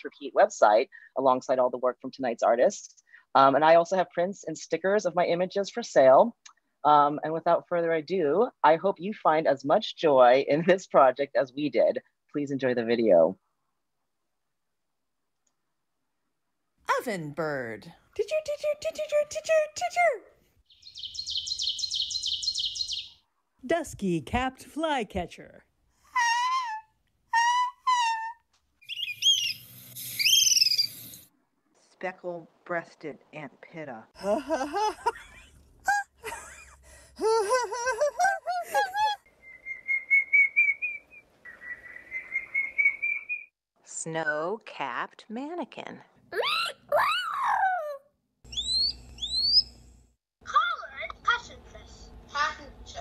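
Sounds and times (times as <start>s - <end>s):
whistled bird calls: 20.7s - 23.2s, 28.8s - 31.2s, 39.3s - 43.5s, 48.5s - 49.7s
people imitating bird calls: 27.4s - 31.2s.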